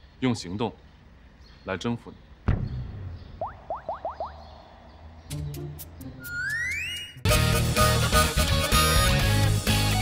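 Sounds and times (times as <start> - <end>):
rising comedic chirps: 3.4 - 7.3.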